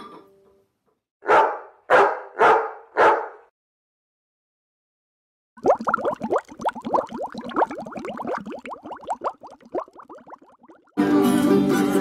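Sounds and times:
wine glugging from bottle: 5.6s - 10.9s.

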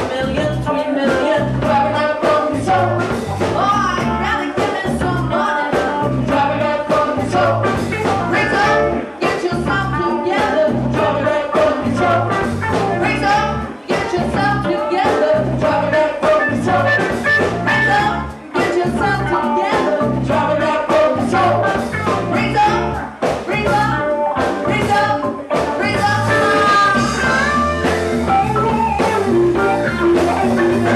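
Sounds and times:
bass guitar line: 0.0s - 30.9s
congas: 0.0s - 30.9s
drum beats: 0.0s - 30.9s
live funk band playing: 0.0s - 30.9s.

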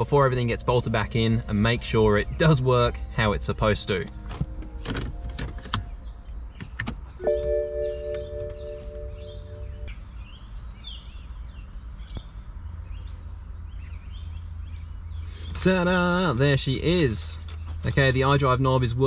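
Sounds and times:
birds chirping: 0.0s - 19.0s
low hum: 0.9s - 10.2s
hands clicking at dashboard: 6.6s - 9.8s
electronic chime: 7.2s - 9.9s.

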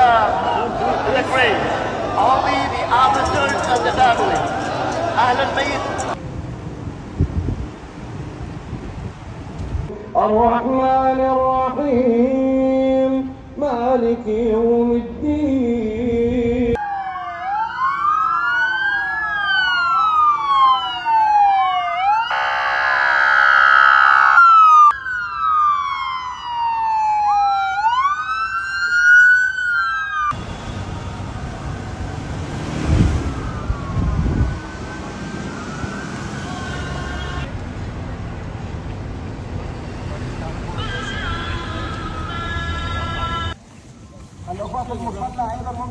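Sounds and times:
police sirens wailing: 0.0s - 6.2s, 16.8s - 38.7s
blaring horn tone: 22.3s - 24.4s.

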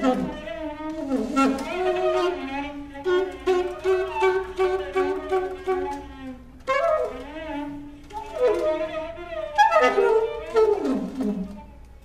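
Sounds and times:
alto saxophone: 0.0s - 12.0s
cello: 0.0s - 12.0s.

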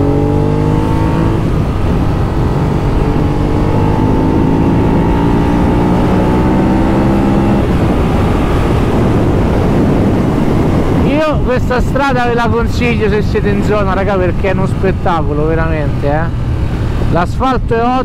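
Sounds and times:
motorcycle engine accelerating: 0.0s - 17.3s
wind rush: 0.0s - 18.0s.

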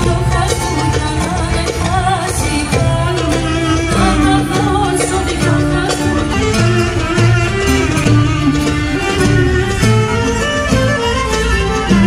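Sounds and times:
fiddle and plucked strings melody: 0.0s - 12.0s
folk dance music: 0.0s - 12.0s.

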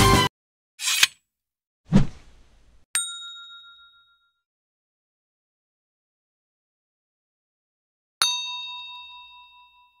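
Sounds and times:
bell-like ding: 3.0s - 4.5s, 8.2s - 10.0s.

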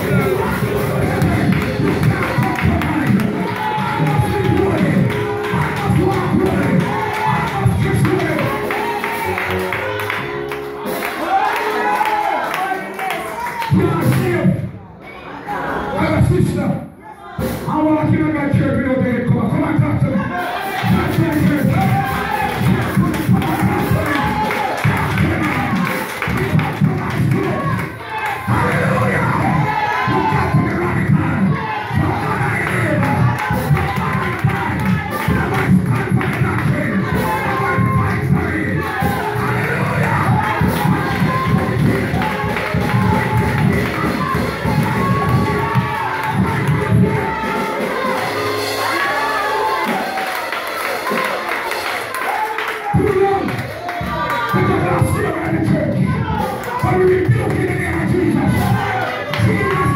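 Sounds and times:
man's voice over microphone: 0.0s - 8.8s, 13.6s - 14.8s, 15.9s - 17.0s, 17.6s - 27.8s, 28.4s - 40.9s, 52.9s - 53.7s, 54.4s - 59.9s
praise music with driving beat: 0.0s - 14.8s, 17.4s - 59.9s
congregation singing and shouting: 0.0s - 59.9s.

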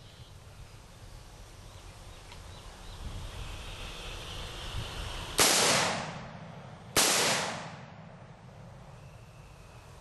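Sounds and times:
rifle shots: 5.4s - 6.4s, 7.0s - 8.2s.

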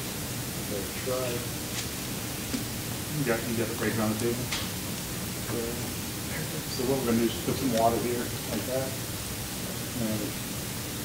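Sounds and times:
steady background hiss: 0.0s - 11.0s
faint voice speaking: 10.0s - 10.4s.

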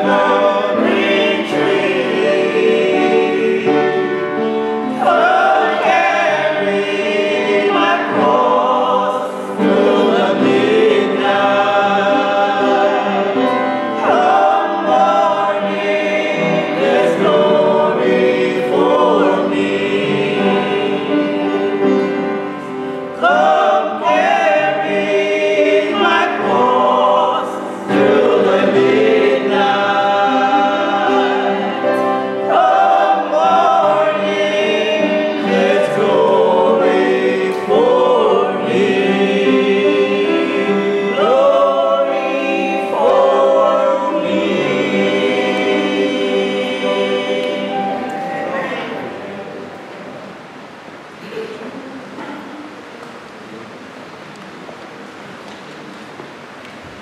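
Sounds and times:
vocal group singing: 0.0s - 50.5s.

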